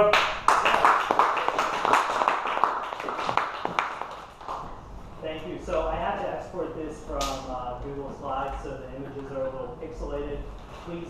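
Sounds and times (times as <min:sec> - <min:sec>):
small group clapping: 0:00.0 - 0:04.8.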